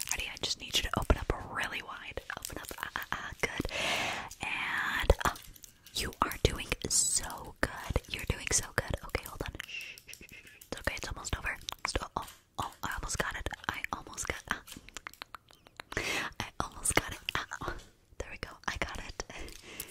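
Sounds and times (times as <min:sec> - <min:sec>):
close whispering: 0:00.0 - 0:19.9
sharp clicks: 0:02.4 - 0:19.9
mouth sounds: 0:11.7 - 0:17.8.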